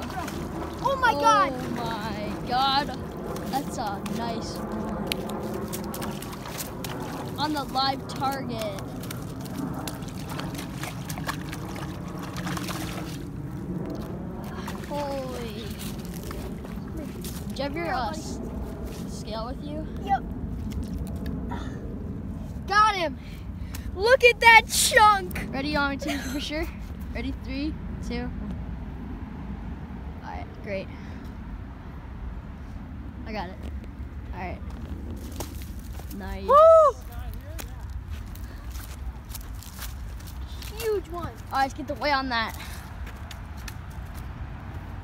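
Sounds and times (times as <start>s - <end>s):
water sloshing: 0.0s - 19.2s
wind rumble on microphone: 0.0s - 45.0s.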